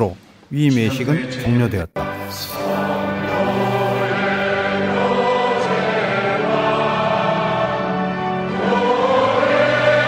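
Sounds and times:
choir and congregation singing hymn: 2.5s - 10.0s.

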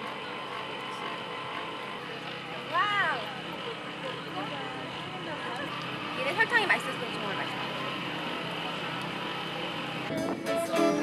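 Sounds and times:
cotton candy machine whirring: 0.0s - 11.0s.

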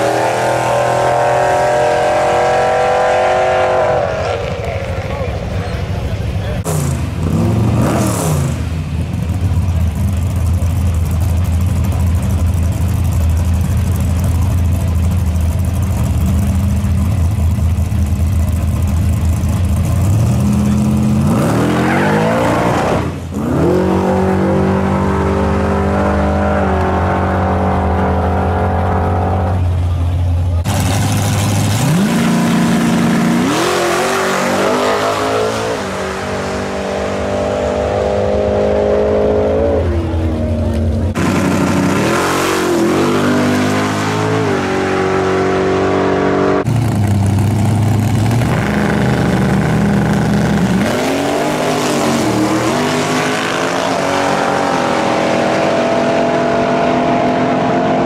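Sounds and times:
engine idling and revving: 0.0s - 58.0s.

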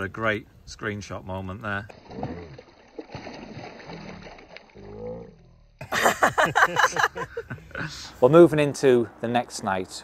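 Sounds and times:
fish splashing in water: 1.9s - 5.1s
person laughing: 5.8s - 8.1s.

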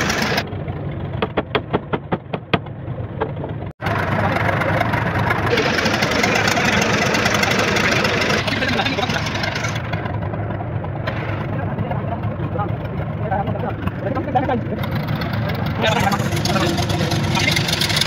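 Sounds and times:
engine running steadily: 0.0s - 18.0s
indistinct voices: 3.8s - 10.0s, 11.0s - 18.0s.

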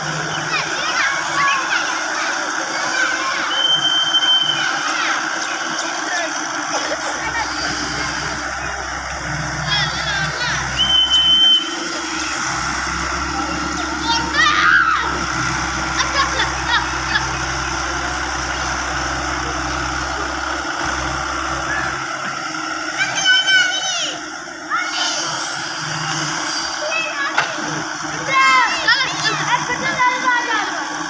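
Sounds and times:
excavator diesel engine running: 0.0s - 31.0s
thin high whistle: 3.4s - 4.8s, 10.7s - 12.2s.

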